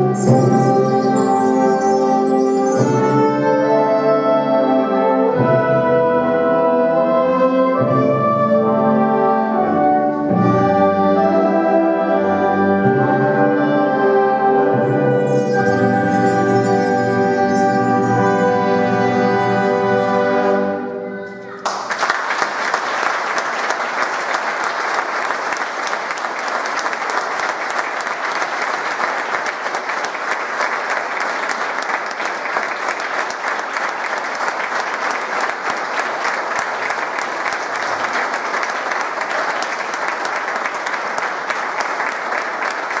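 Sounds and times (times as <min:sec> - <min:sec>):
audience applause: 0:21.3 - 0:43.0.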